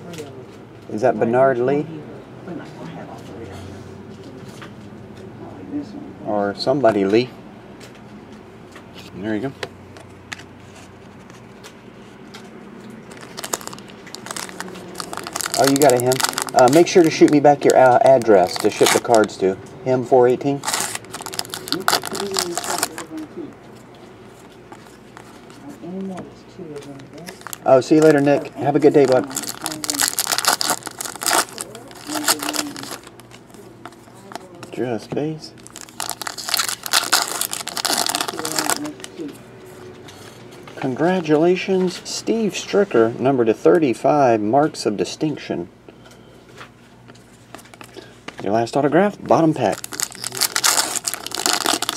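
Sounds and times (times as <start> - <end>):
foil packs crinkling: 13.0 - 19.4, 20.5 - 23.2, 27.2 - 34.5, 35.5 - 39.2, 49.6 - 51.9.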